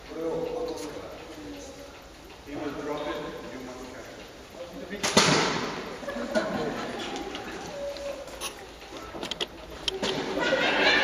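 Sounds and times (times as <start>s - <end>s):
faint voices: 0.0s - 11.0s
sharp knock: 5.0s - 5.8s.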